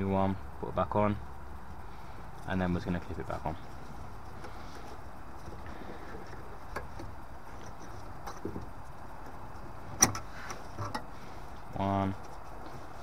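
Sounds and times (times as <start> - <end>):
steady low hiss: 0.0 - 13.0.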